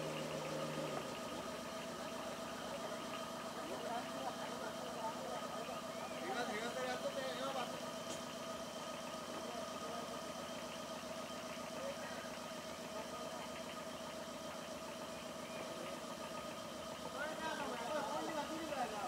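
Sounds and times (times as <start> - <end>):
small engine idling: 0.0 - 19.0
people talking: 1.8 - 7.9, 9.3 - 10.3, 11.7 - 14.6, 17.0 - 19.0.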